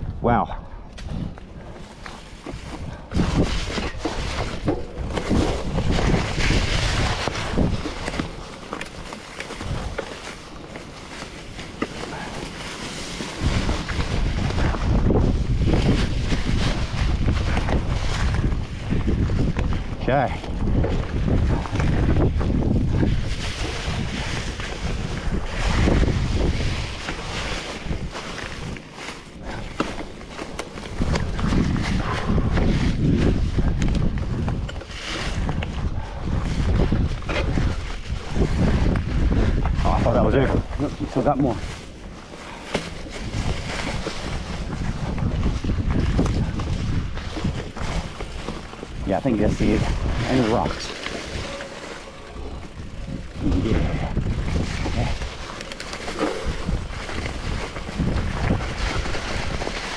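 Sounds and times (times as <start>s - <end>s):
wind rumbling on microphone: 0.0s - 59.9s.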